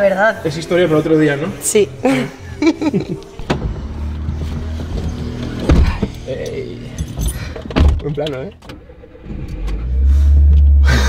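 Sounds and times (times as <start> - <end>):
car engine starting and revving: 0.4 - 11.0
person laughing: 2.0 - 3.4.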